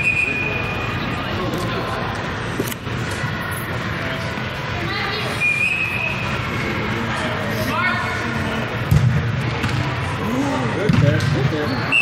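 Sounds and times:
voices talking and calling out: 0.0s - 12.0s
soccer ball kicked thud: 8.9s - 9.9s, 10.8s - 11.5s.

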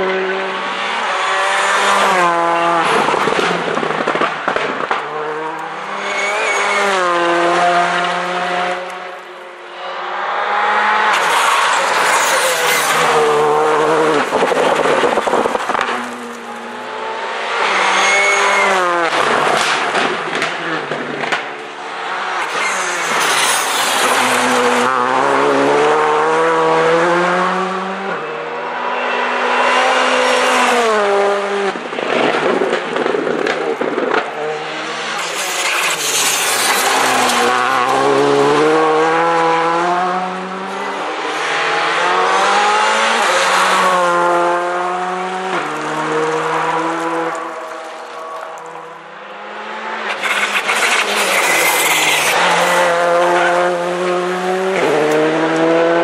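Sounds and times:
rally car passing at speed: 0.0s - 56.0s.

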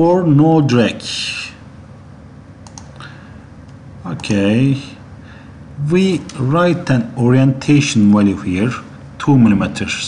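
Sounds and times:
low steady background noise: 0.0s - 10.0s
computer mouse clicks: 2.6s - 3.0s.

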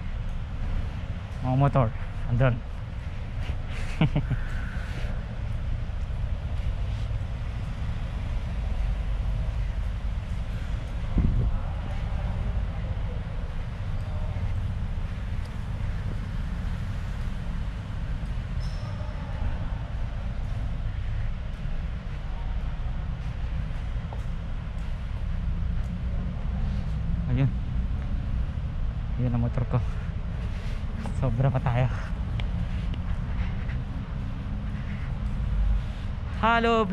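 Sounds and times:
low rumble of car park: 0.0s - 36.9s.

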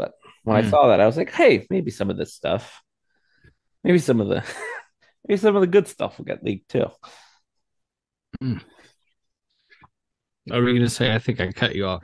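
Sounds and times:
man speaking: 0.0s - 2.8s, 10.5s - 12.0s.

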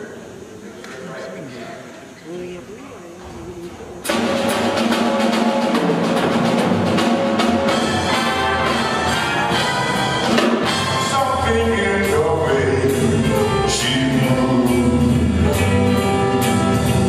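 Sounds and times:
jazz big band playing: 3.6s - 17.0s.

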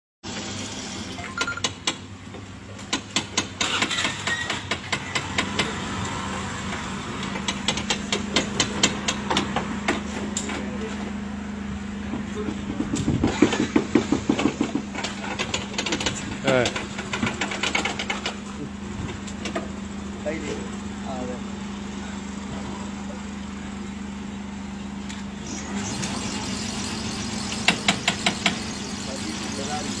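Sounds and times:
voices talking: 10.4s - 17.0s.

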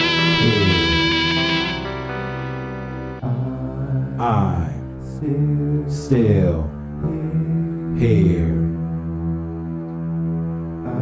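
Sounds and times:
electric guitar ringing notes: 0.0s - 3.2s
person singing long sliding note: 0.0s - 4.2s.

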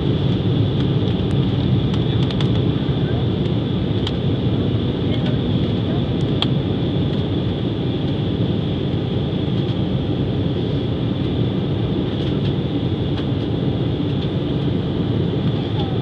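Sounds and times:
high engine whine: 0.0s - 16.0s
jet engine low rumble: 0.0s - 16.0s.

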